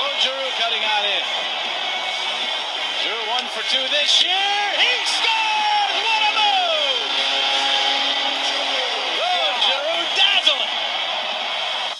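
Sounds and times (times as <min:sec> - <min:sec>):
commentator calling a goal: 0:00.0 - 0:01.3, 0:03.0 - 0:07.6, 0:08.4 - 0:10.8
arena crowd noise: 0:00.0 - 0:11.9.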